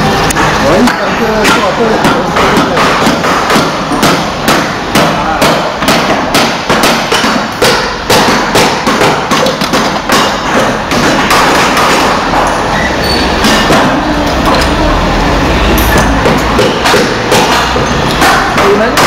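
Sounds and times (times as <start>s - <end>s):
hammer strikes on clay: 0.8s - 12.5s, 15.9s - 19.0s.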